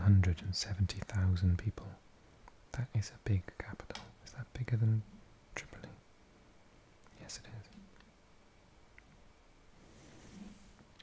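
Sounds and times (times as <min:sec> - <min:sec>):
faint sharp click: 0:03.8 - 0:04.1.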